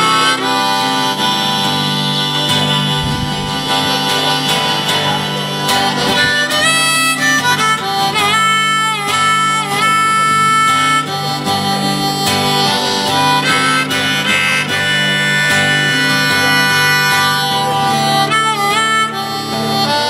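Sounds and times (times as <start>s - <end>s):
acoustic guitar accompaniment: 0.0s - 20.0s
harmonica solo: 0.0s - 20.0s.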